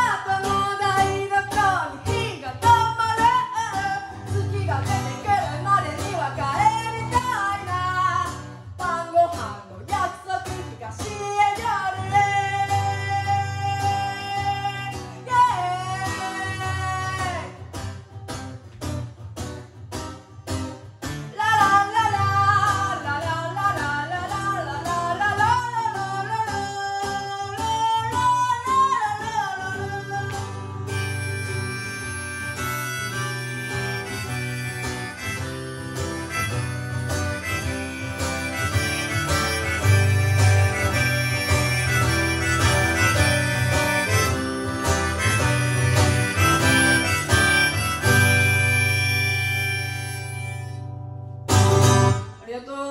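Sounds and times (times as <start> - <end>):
woman singing: 0.0 - 17.7, 21.2 - 31.0, 52.3 - 52.9
acoustic guitar strumming: 0.0 - 52.5
harmonica playing: 30.0 - 52.3.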